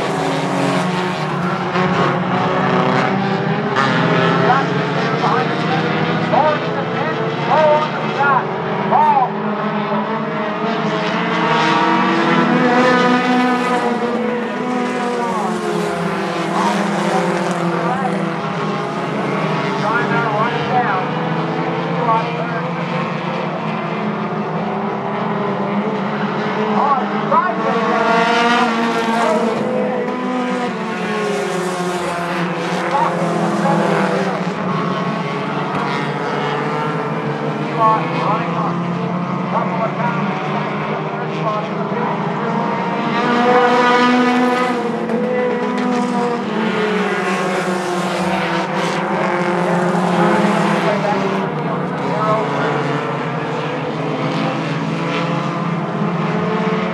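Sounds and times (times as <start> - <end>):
race car engines revving: 0.0 - 56.9.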